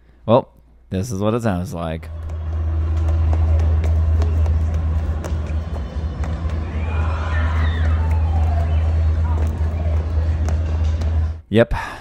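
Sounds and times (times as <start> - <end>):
loud low rumble: 2.1 - 11.4.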